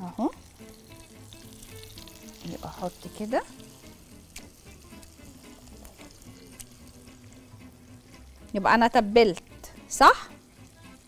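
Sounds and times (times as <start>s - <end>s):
fish frying in oil: 0.0s - 11.0s
crackling pops: 1.6s - 7.4s.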